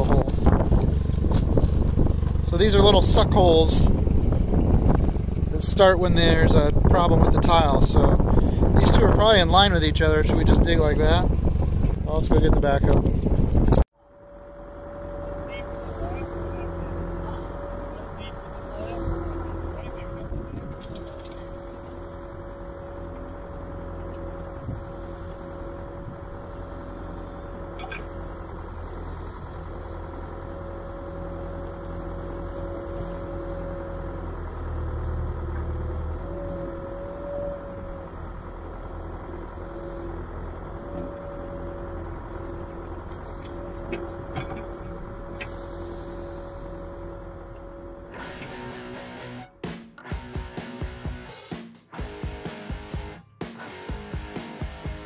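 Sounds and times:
diesel engine running: 0.0 - 55.0
steady whine: 0.0 - 55.0.

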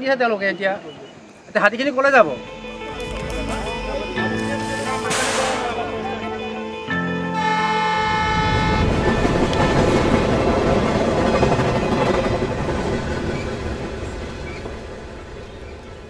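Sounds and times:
passing train rumble: 1.0 - 16.0
train horn: 2.2 - 10.8.

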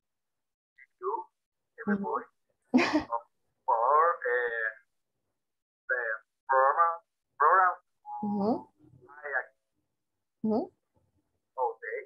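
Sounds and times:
voices speaking over video call: 0.8 - 12.0
laughter over video call: 2.8 - 3.2.

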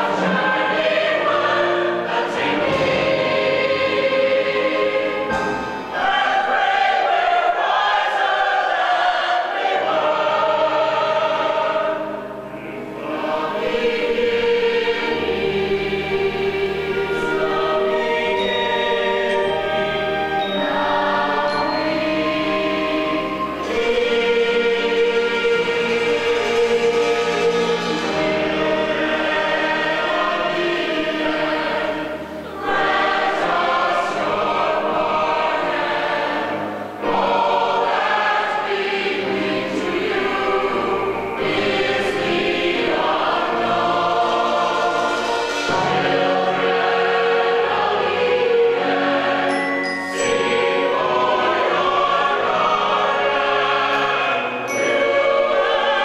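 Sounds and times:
choir singing held chords: 0.0 - 56.0.

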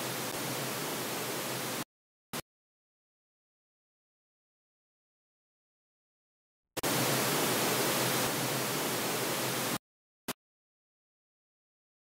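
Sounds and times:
pink noise hiss: 0.0 - 1.8, 6.8 - 9.8.

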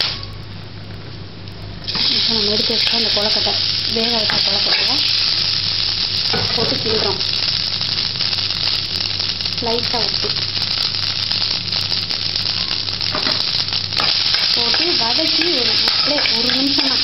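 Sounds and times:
oil sizzling and crackling in a pan: 0.0 - 17.0
spoon stirring in a pan: 14.0 - 17.0.

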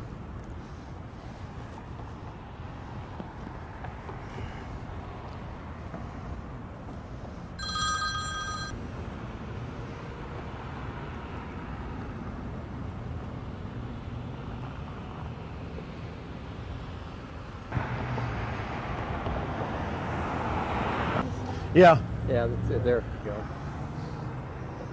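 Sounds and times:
street traffic: 0.0 - 24.9
short electronic ringing tone: 7.6 - 8.8.

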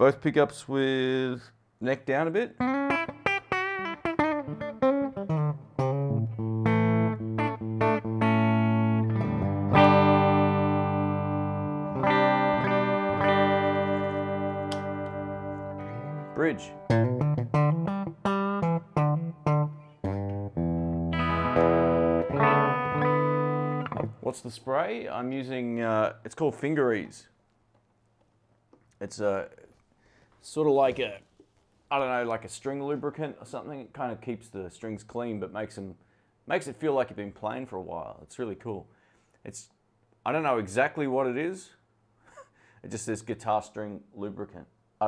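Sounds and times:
electric guitar playing: 2.6 - 24.2.

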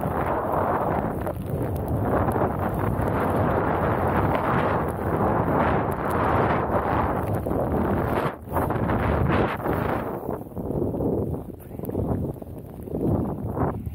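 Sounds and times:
snowboard sliding through powder: 0.0 - 13.9
wind buffeting microphone: 0.0 - 13.9.

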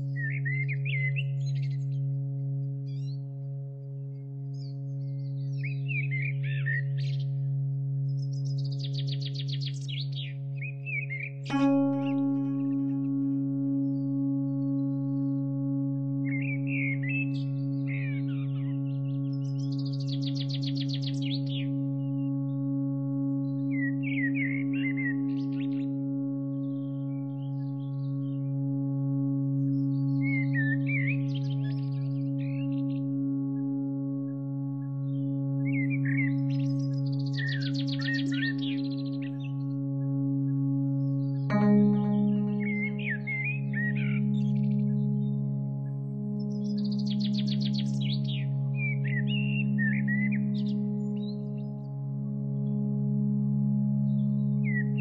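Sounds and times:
birdsong chirps and trills: 0.0 - 55.0
low drone hum: 0.0 - 55.0
singing bowl ringing: 11.5 - 20.6, 41.4 - 48.6.

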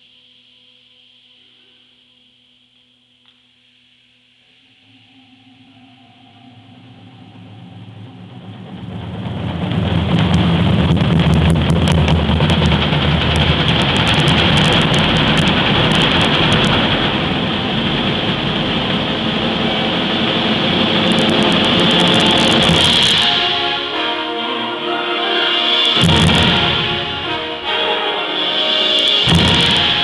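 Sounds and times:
percussion hits: 4.8 - 30.0
concert band playing: 7.0 - 30.0.

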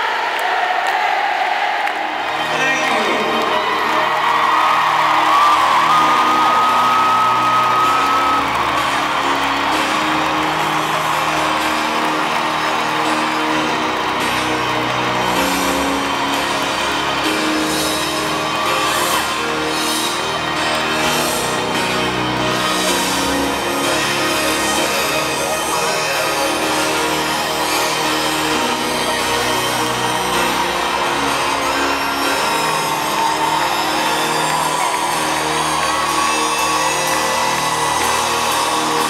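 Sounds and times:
crowd whooping and yelling: 0.0 - 39.0.

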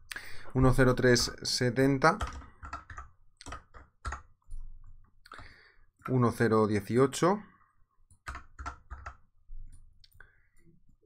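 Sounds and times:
keyboard and mouse clicks: 2.1 - 6.2, 8.1 - 10.2.

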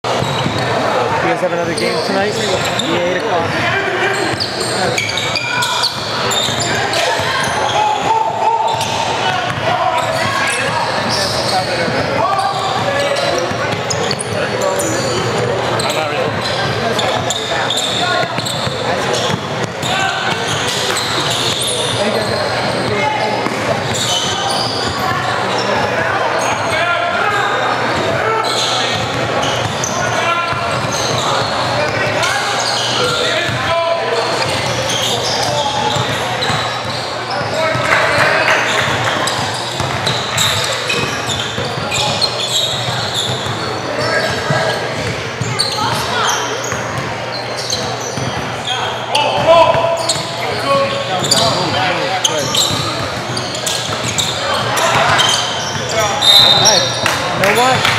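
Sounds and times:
echoing voices in gym hall: 0.0 - 57.9
basketball bouncing on floor: 39.8 - 41.1.

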